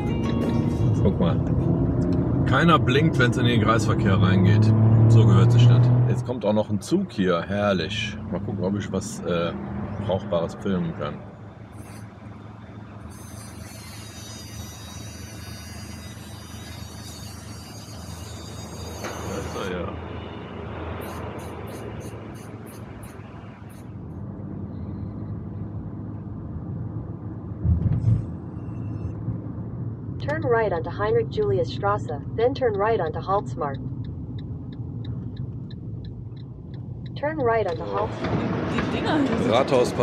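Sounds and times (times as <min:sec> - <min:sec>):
road and engine noise in car: 0:00.0 - 0:40.0
low thump: 0:27.6 - 0:28.3
sat-nav voice giving directions: 0:30.2 - 0:33.8, 0:37.2 - 0:38.1
quick regular ticking: 0:33.8 - 0:37.5.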